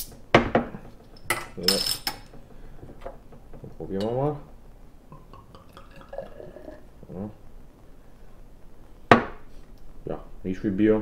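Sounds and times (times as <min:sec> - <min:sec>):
beer pouring into a glass: 0:05.1 - 0:06.9.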